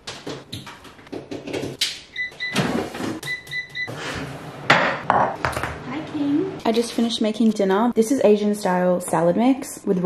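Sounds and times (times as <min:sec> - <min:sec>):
air fryer button beeps: 0:03.2 - 0:03.9
kitchen clatter: 0:04.7 - 0:05.8.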